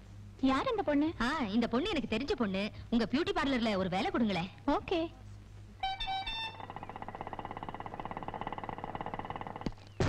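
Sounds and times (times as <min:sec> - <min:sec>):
short horn beeps: 0:05.8 - 0:06.6.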